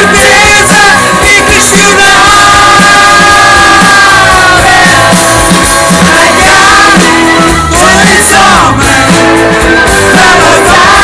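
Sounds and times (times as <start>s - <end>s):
live rock band playing loudly: 0.0s - 11.0s.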